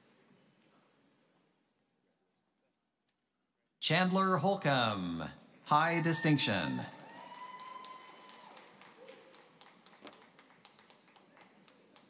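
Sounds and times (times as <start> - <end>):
audience clapping faintly: 7.0 - 12.0.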